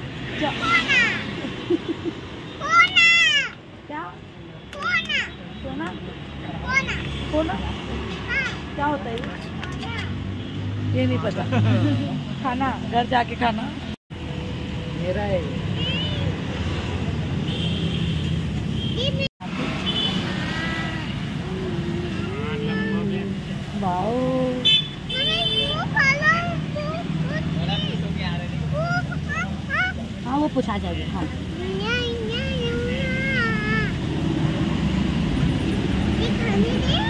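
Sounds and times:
traffic rumble: 0:00.0 - 0:37.0.

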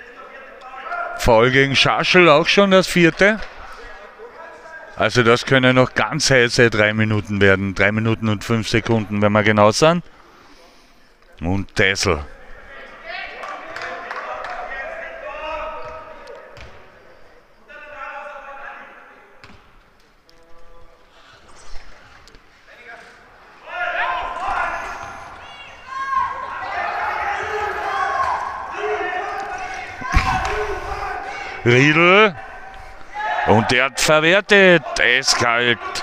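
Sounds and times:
voices calling out: 0:23.4 - 0:36.0.

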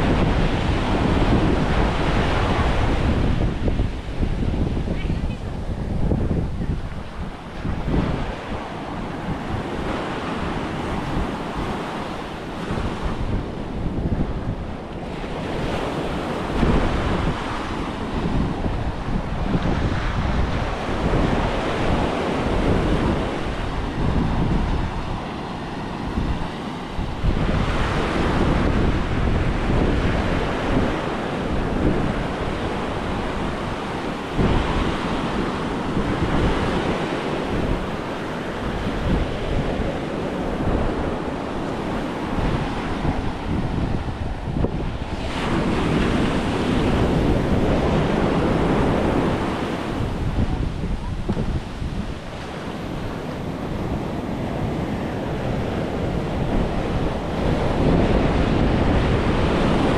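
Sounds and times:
surf breaking on a beach: 0:00.0 - 0:59.9
wind buffeting microphone: 0:00.0 - 0:59.9.

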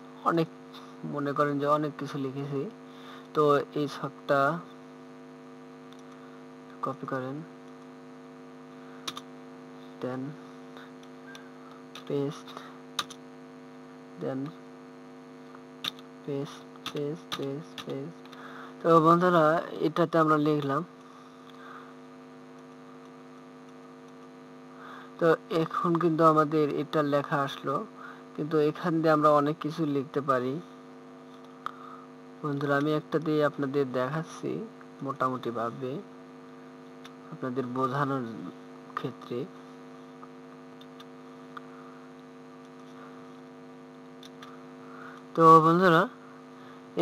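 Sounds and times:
electrical mains hum: 0:00.0 - 0:47.0
man speaking: 0:00.2 - 0:02.7, 0:03.4 - 0:04.7, 0:06.8 - 0:07.5, 0:10.0 - 0:10.5, 0:12.0 - 0:12.7, 0:14.2 - 0:14.6, 0:16.2 - 0:18.2, 0:18.8 - 0:20.9, 0:25.2 - 0:30.7, 0:32.4 - 0:36.1, 0:37.3 - 0:39.6, 0:45.3 - 0:46.2.

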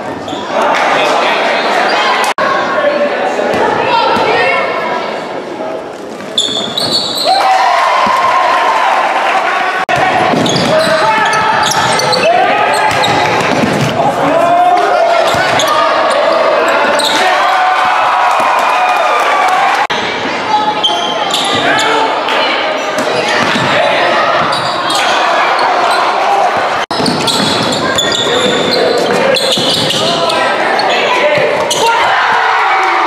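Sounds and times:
crowd voices calling out: 0:00.0 - 0:33.0.

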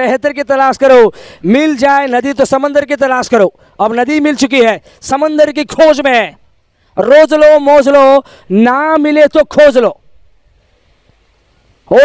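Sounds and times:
man commentating: 0:00.0 - 0:06.4, 0:07.0 - 0:10.0.

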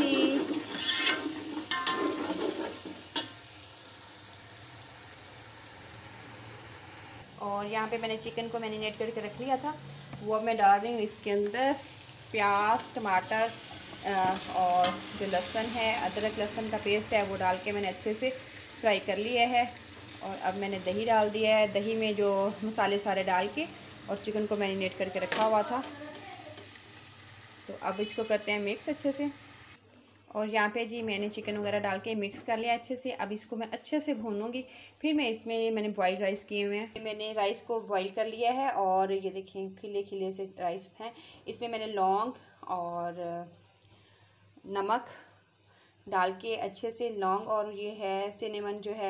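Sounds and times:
vegetables sizzling in oil: 0:00.0 - 0:29.8.

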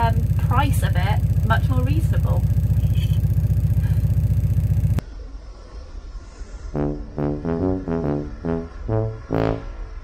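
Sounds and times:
engine idling: 0:00.0 - 0:05.0.

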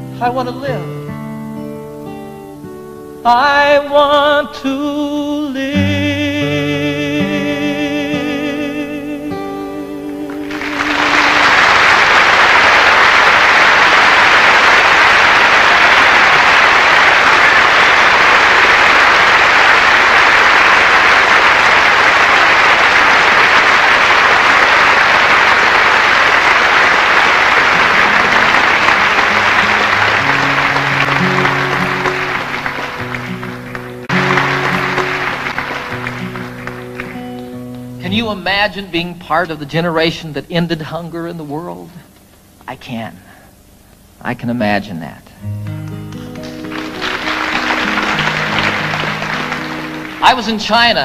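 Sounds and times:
audience applauding: 0:10.3 - 0:38.4, 0:45.8 - 0:51.0
soft instrumental chords: 0:45.5 - 0:50.6.

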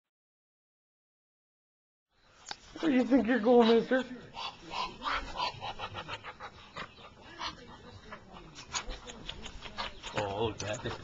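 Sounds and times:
duck breathy sounds: 0:03.6 - 0:10.2.

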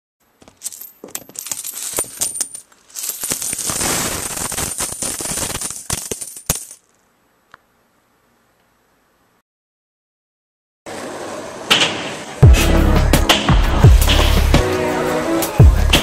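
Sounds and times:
coins clattering on a surface: 0:00.4 - 0:07.0.

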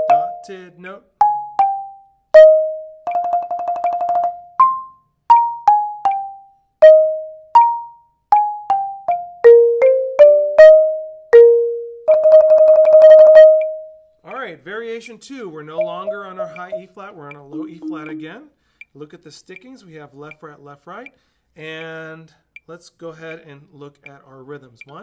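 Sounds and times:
marimba notes with yarn mallets: 0:00.0 - 0:00.4, 0:01.2 - 0:13.8, 0:15.8 - 0:16.9, 0:17.5 - 0:18.5.

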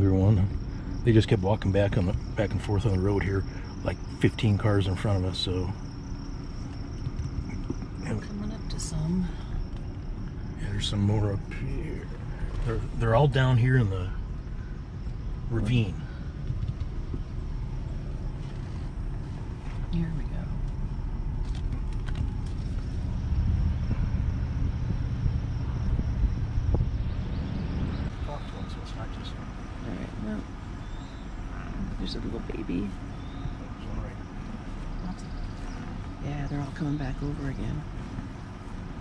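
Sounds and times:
truck engine and tyre rumble: 0:00.0 - 0:39.0.

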